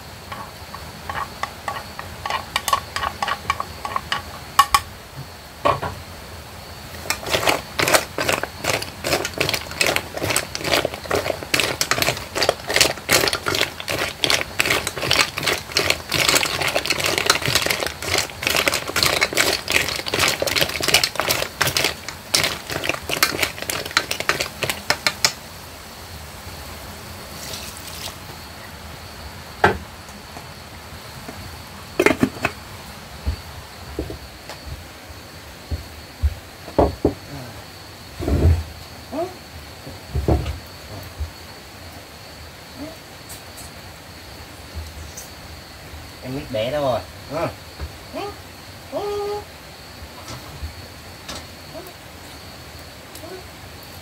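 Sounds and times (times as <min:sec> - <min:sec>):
shells clattering in metal pot: 0:00.3 - 0:04.9, 0:07.0 - 0:25.4.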